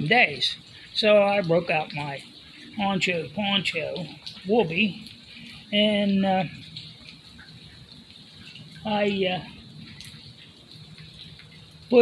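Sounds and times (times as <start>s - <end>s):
rain and sleet hissing: 0.0s - 12.0s.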